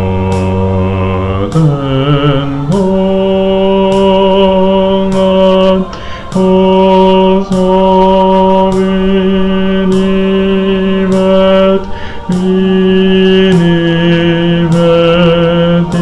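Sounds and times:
low voice singing: 0:00.0 - 0:16.0.

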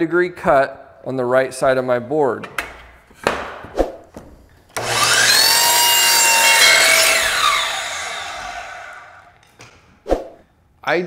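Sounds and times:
miter saw cutting wood: 0:04.8 - 0:09.4
saw spinning down whine: 0:04.8 - 0:09.4.

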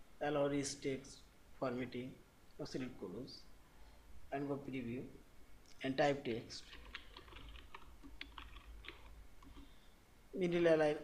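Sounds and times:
keyboard typing: 0:06.6 - 0:09.8.

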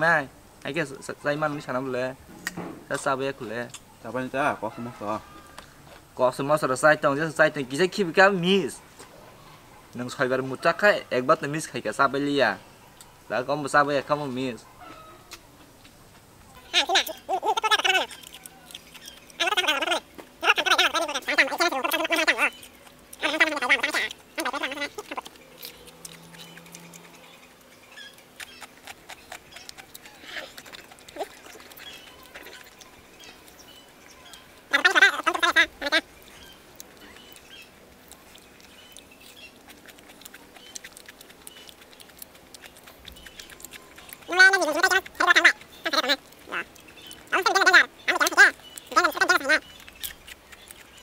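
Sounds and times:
crunching carrot being chewed: 0:04.8 - 0:06.6, 0:14.1 - 0:51.0.

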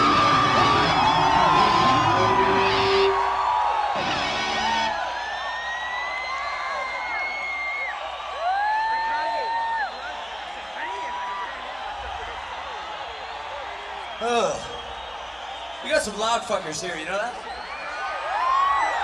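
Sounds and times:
heavy metal band playing: 0:00.0 - 0:03.3, 0:04.0 - 0:04.9
crowd cheering and whooping: 0:00.0 - 0:19.0.

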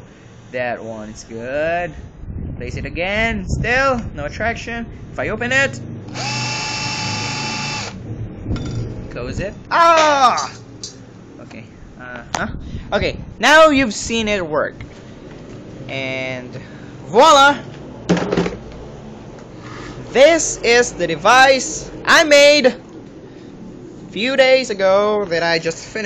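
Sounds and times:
electromagnet electric whine: 0:05.6 - 0:08.8.

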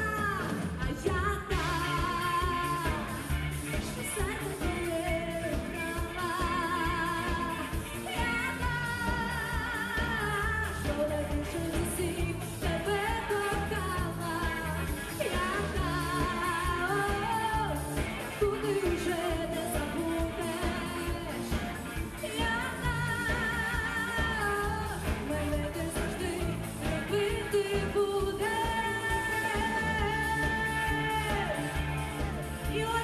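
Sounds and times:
drums: 0:00.0 - 0:33.0
electric guitars: 0:00.0 - 0:33.0
woman singing with vibrato: 0:00.0 - 0:33.0.

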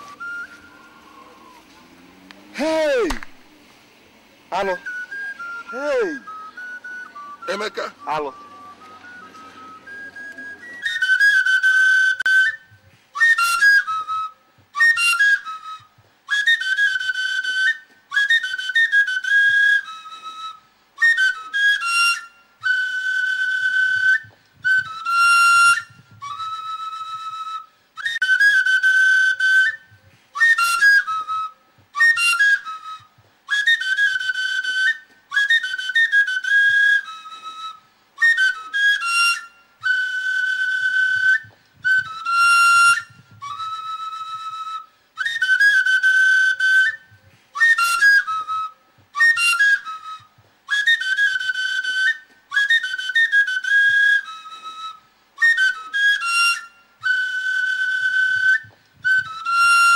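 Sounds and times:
whistle-like flute melody: 0:00.0 - 0:03.2, 0:04.5 - 0:59.9.

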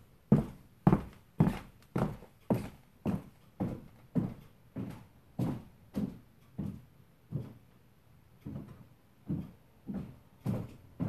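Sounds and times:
high heel footsteps on wooden floor: 0:00.3 - 0:07.6, 0:08.4 - 0:11.0.

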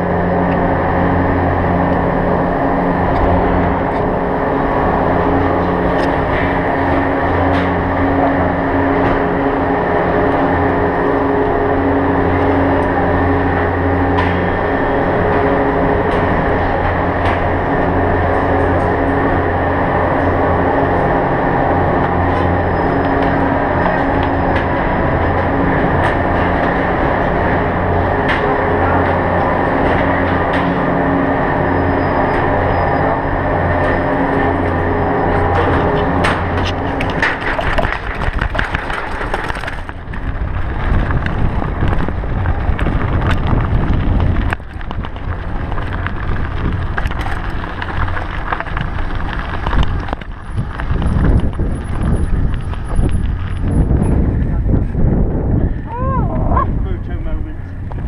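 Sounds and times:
lift machinery humming: 0:00.0 - 0:40.4.

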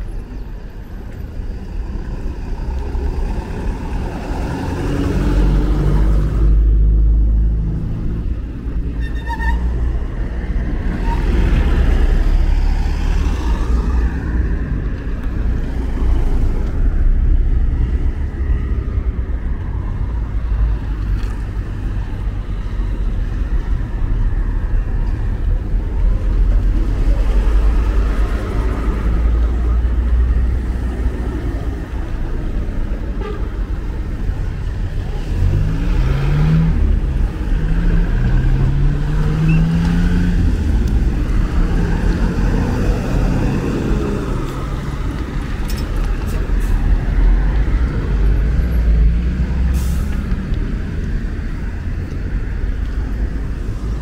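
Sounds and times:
car and truck engines passing: 0:00.0 - 0:54.0
low traffic rumble: 0:00.0 - 0:54.0.

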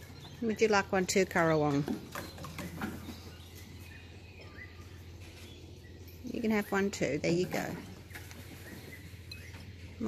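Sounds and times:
faint bird chirp: 0:00.0 - 0:10.0.

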